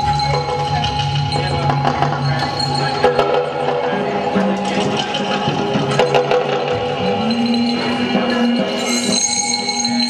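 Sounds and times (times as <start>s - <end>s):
layered held tones: 0.0s - 10.0s
scattered knocks and clicks: 0.2s - 8.4s.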